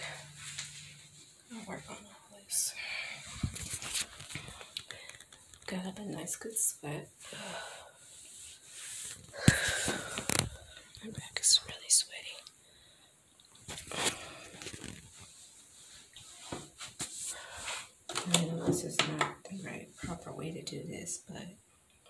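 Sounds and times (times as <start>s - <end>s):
person whispering: 11.0s - 12.5s.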